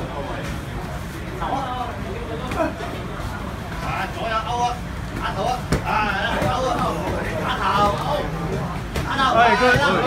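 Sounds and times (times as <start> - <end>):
voices of people: 0.0 - 10.0.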